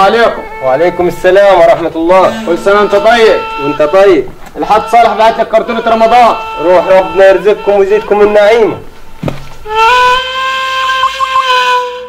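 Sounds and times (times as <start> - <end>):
flute-like woodwind long note: 9.7 - 12.0.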